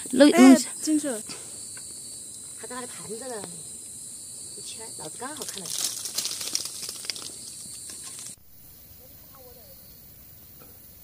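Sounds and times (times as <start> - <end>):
faint hiss: 0.0 - 11.0
insects trilling: 0.0 - 11.0
leaves and twigs crackling: 1.7 - 8.4.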